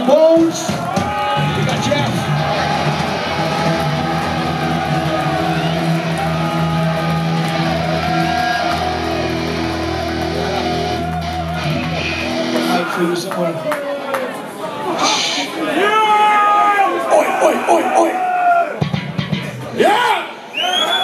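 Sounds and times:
distorted guitars droning: 0:02.2 - 0:12.8.

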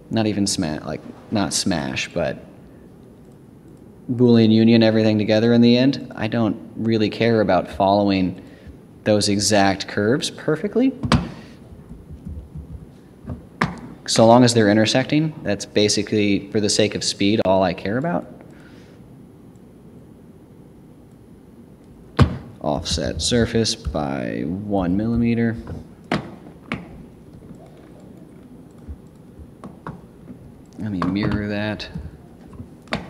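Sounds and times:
soft low thumps: 0:11.7 - 0:13.5, 0:22.2 - 0:24.2, 0:28.7 - 0:30.6, 0:31.2 - 0:32.7.

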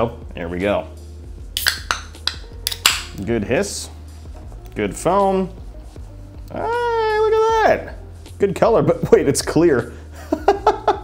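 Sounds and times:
can pull tab clicks: 0:01.6 - 0:03.1
can cracking open with hiss: 0:01.6 - 0:03.2.

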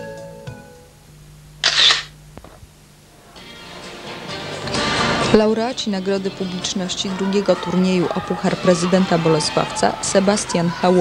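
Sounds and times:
low steady hum: 0:00.0 - 0:06.8.

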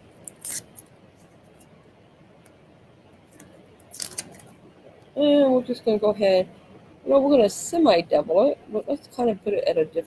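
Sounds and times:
packaging crinkling: 0:03.9 - 0:04.5.

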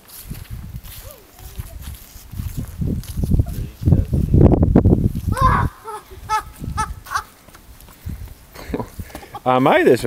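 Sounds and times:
child laughing: 0:05.3 - 0:07.4.

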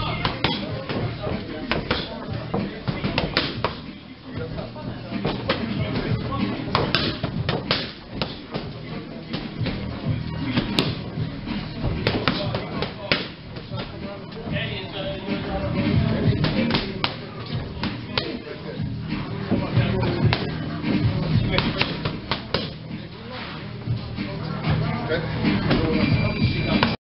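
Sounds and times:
background music: 0:00.0 - 0:27.0
boxing gloves striking mitts: 0:00.2 - 0:03.9, 0:06.7 - 0:08.7, 0:10.6 - 0:11.0, 0:11.8 - 0:14.0, 0:21.5 - 0:22.8.

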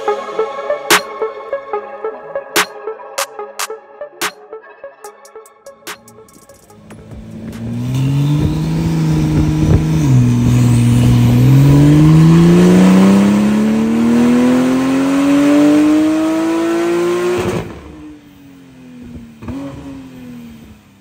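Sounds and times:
car engine revving on dyno: 0:06.8 - 0:20.8.

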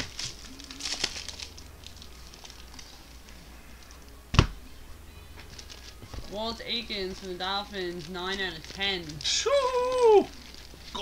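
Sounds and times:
foil wrapper crinkling: 0:00.0 - 0:04.2, 0:05.4 - 0:11.0.

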